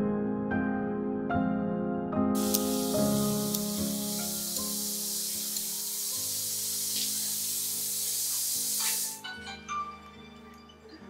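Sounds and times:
slow piano music: 0.0s - 11.0s
water running: 2.4s - 9.2s.

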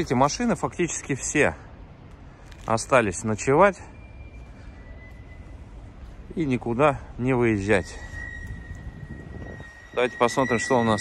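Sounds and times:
thin high whine: 3.4s - 11.0s.

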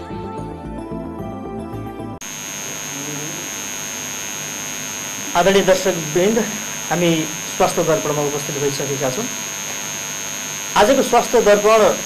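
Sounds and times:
background music: 0.0s - 2.2s
electrical hiss: 2.2s - 12.0s
high-pitched whine: 2.2s - 12.0s.

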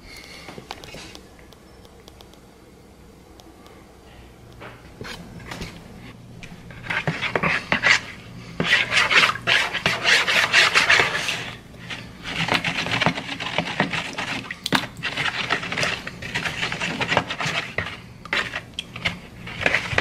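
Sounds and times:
metal spoon stirring in plastic bowl: 6.7s - 20.0s.

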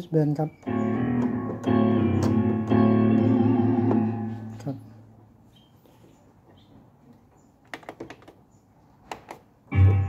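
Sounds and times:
synthesizer buttons clicking: 0.6s - 4.7s.

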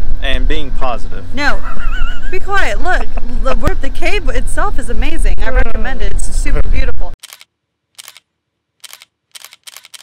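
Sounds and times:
camera shutter clicks: 7.2s - 10.0s.

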